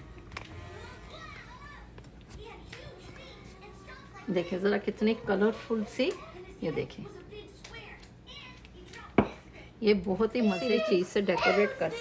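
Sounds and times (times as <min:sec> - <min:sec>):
faint children's voices: 0:00.5 - 0:09.8.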